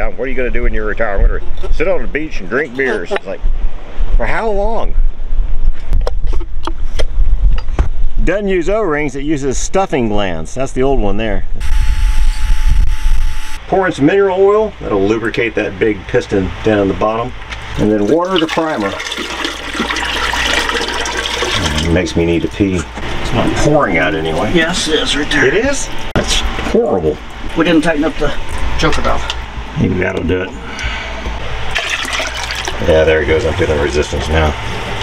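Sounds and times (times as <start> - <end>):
wind rumbling on microphone: 3.3 - 8.5, 11.0 - 13.6
water pouring into toilet bowl: 17.9 - 22.6, 31.7 - 33.0.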